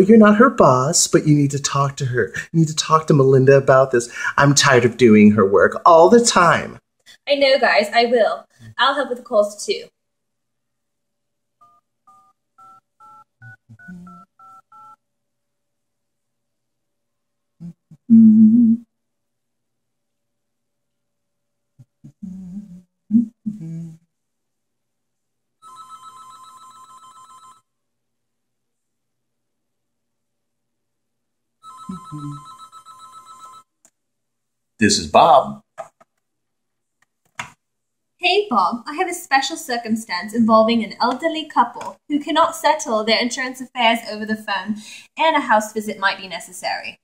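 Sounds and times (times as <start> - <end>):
telephone ringing: 11.6 - 15.0, 25.6 - 27.7, 31.6 - 33.8
touch-tone keypad beeps: 11.6 - 15.0.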